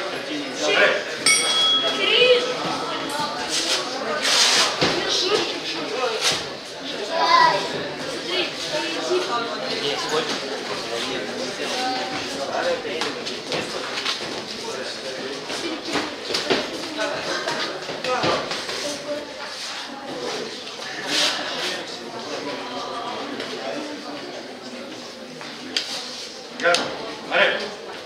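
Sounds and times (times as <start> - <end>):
people talking and calling out: 0.0 - 28.0.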